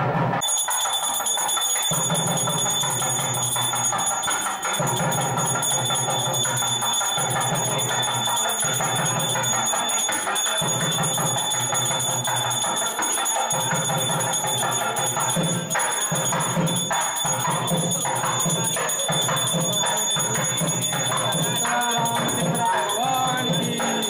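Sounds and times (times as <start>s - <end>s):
music: 0.0s - 24.0s
temple bell ringing: 0.4s - 24.0s.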